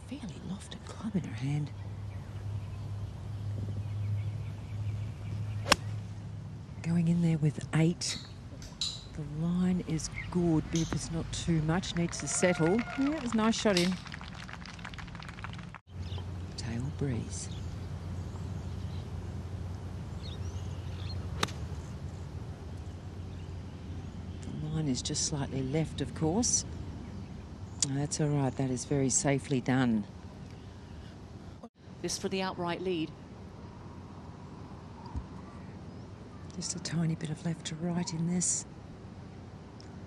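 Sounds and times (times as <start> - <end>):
outdoor background hush: 0.0 - 40.0.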